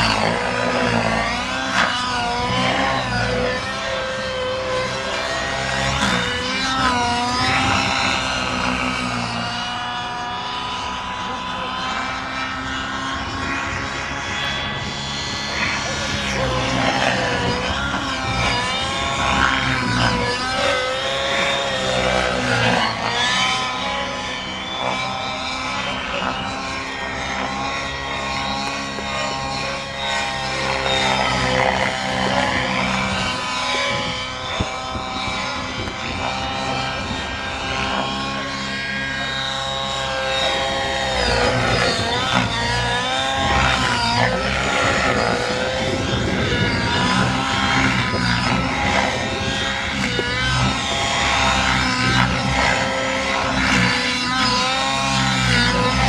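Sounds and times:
model helicopter engine and rotor: 0:00.0 - 0:56.0.

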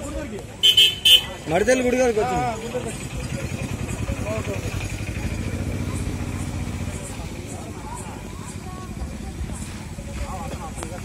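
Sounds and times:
small engine running: 0:02.3 - 0:10.2.

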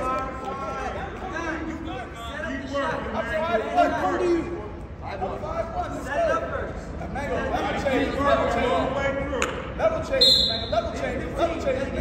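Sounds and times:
voices echoing in gymnasium: 0:00.0 - 0:12.0
referee's whistle blast: 0:10.2 - 0:10.8.

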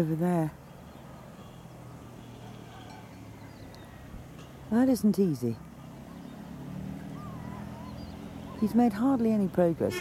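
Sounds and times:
light background noise: 0:00.0 - 0:10.0.

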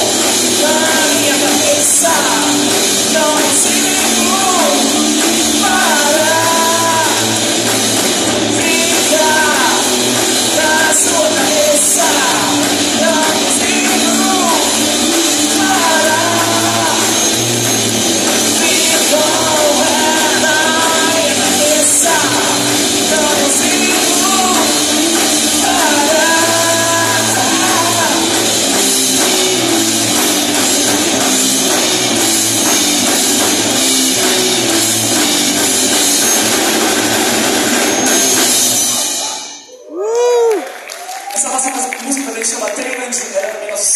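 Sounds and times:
electric bass low notes: 0:00.0 - 0:38.7
drum kit with cymbals: 0:00.0 - 0:40.5
electric guitar: 0:00.0 - 0:43.9
live rock band playing: 0:00.0 - 0:43.9.

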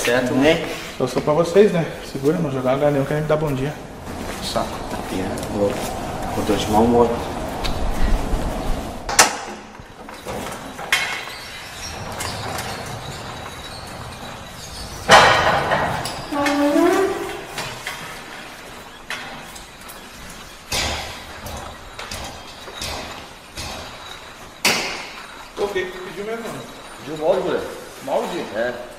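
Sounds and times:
steady background noise: 0:00.0 - 0:28.9
sharp knocks: 0:15.0 - 0:16.6, 0:20.6 - 0:25.2.

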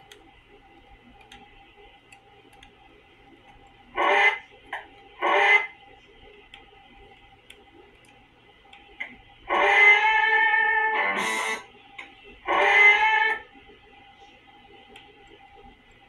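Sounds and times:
low steady background: 0:00.0 - 0:16.0
faint light ticking: 0:06.3 - 0:09.2.

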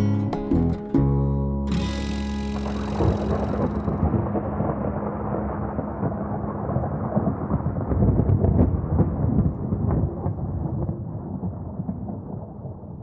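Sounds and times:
low rumbling with crackles: 0:02.0 - 0:13.0.

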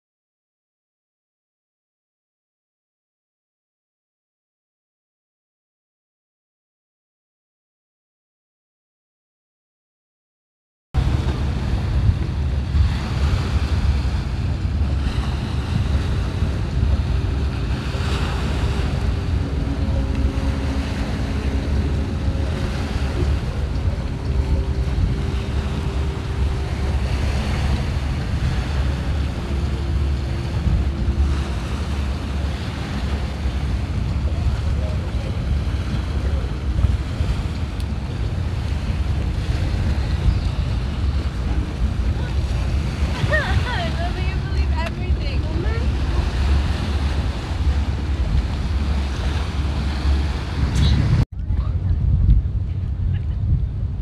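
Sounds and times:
water washing: 0:11.0 - 0:51.8
faint steady hums: 0:11.0 - 0:54.0
steady low rumble: 0:11.0 - 0:54.0
wind buffeting microphone: 0:11.0 - 0:54.0.

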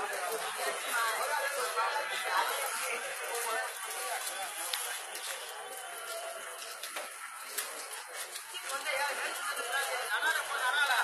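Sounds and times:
busy noisy background: 0:00.0 - 0:11.0
people talking: 0:00.0 - 0:11.0.

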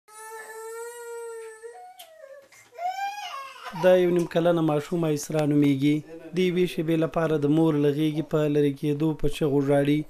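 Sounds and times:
toddler crying: 0:00.1 - 0:04.1.

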